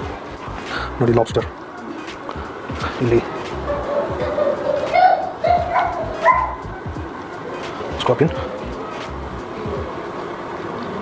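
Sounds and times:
background music: 0.0 - 10.6
high-pitched vocal calls: 0.0 - 11.0.

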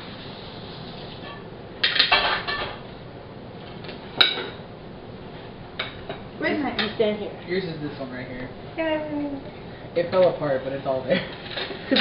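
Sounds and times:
plates and cutlery clattering: 1.2 - 2.8, 4.2 - 4.6.

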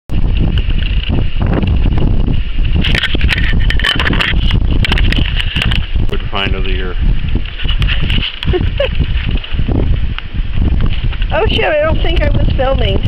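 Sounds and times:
wind buffeting microphone: 0.1 - 13.0.

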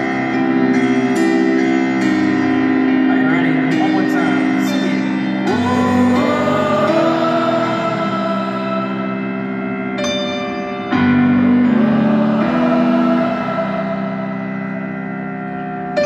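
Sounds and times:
piano chords ringing: 0.0 - 16.0.

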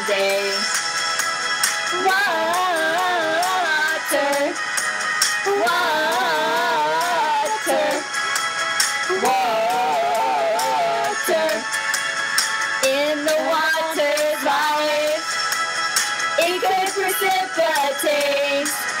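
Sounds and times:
pop ballad backing track: 0.0 - 19.0
women singing off key: 5.5 - 8.1.

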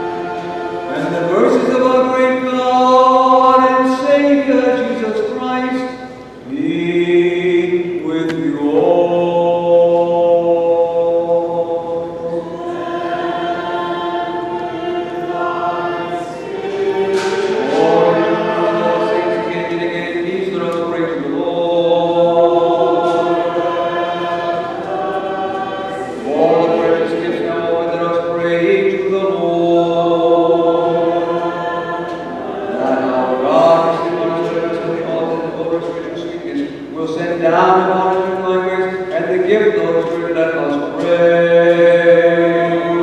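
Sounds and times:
liturgical chant: 0.0 - 43.0.

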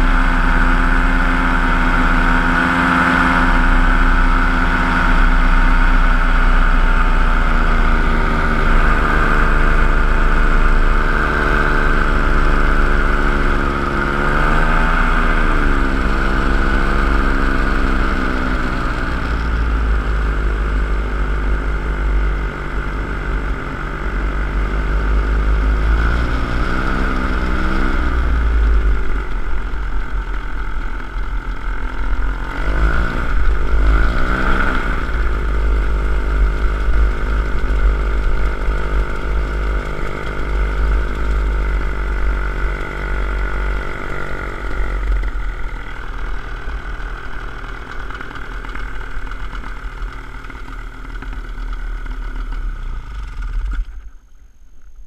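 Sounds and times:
paratrike engine and propeller: 0.0 - 54.3.

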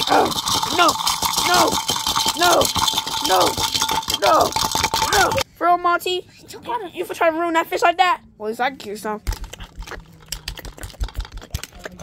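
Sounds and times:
plastic figures clattering: 0.0 - 5.4.

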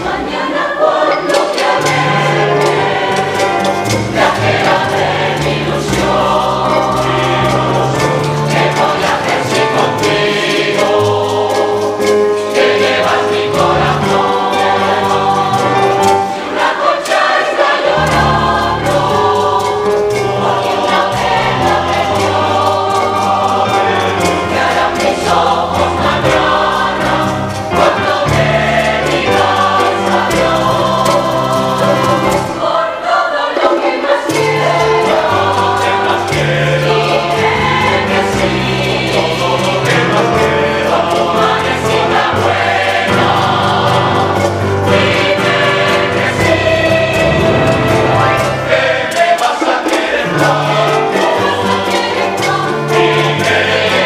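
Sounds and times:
mixed choir singing: 0.0 - 54.0.

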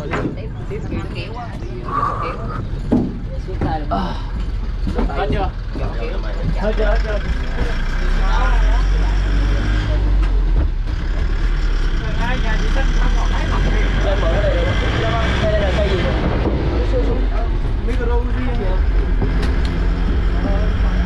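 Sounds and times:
men talking: 0.0 - 10.6, 11.7 - 21.0
truck engine rumbling: 0.0 - 21.0.

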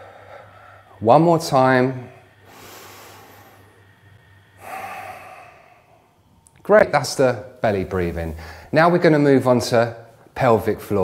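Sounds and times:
man inhaling through nose: 2.2 - 6.2
man exhaling through mouth: 4.6 - 6.1.

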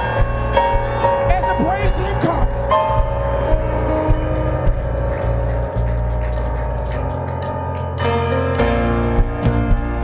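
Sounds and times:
held bass: 0.0 - 10.0
sustained keyboard chords: 0.0 - 10.0.

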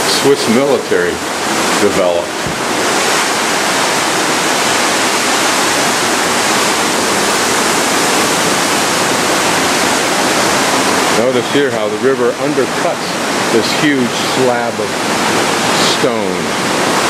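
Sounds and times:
whitewater rushing through gorge: 0.0 - 17.0.

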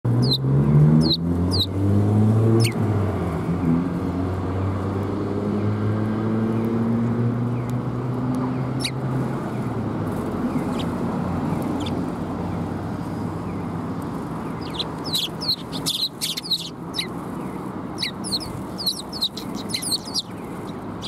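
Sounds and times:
sparrows chirping: 0.1 - 1.8, 2.4 - 2.9, 6.5 - 21.0.

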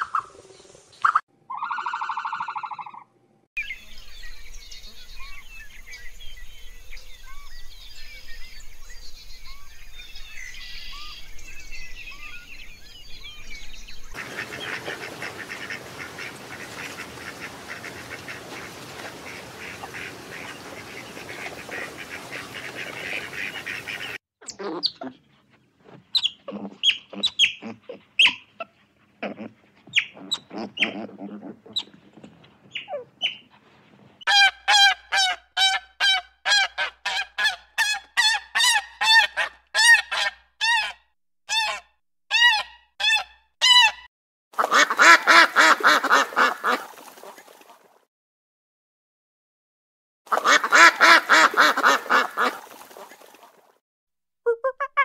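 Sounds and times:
shelduck honking: 34.3 - 44.0, 50.3 - 52.6.

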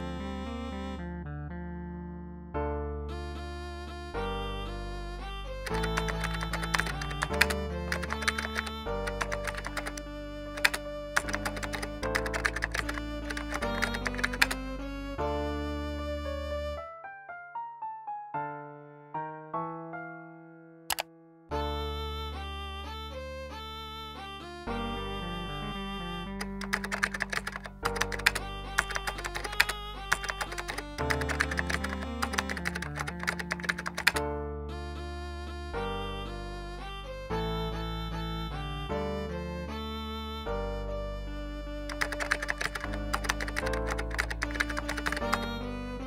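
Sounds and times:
background music with held chords: 2.6 - 18.3, 21.1 - 46.0
keyboard typing: 5.6 - 14.6, 26.4 - 34.2, 41.9 - 45.5.

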